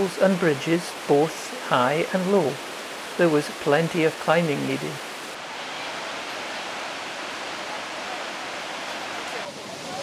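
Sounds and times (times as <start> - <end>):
rushing river water: 0.0 - 10.0.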